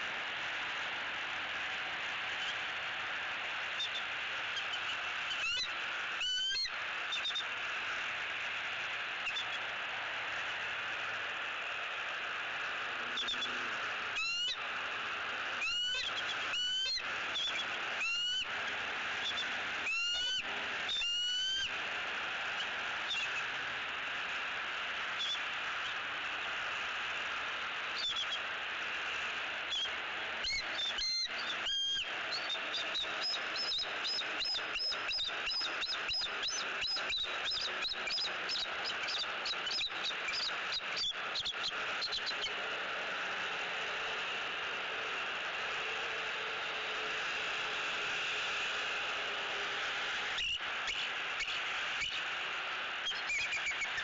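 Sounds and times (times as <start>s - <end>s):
steady hiss: 0.0s - 54.0s
eagle piping calls: 3.8s - 7.5s, 14.2s - 14.6s, 15.6s - 18.5s, 19.2s - 21.7s, 22.6s - 23.5s, 28.0s - 28.5s, 29.7s - 42.6s, 53.0s - 54.0s
eagle high chittering: 13.1s - 14.6s, 19.1s - 21.8s, 25.2s - 42.6s, 53.0s - 54.0s.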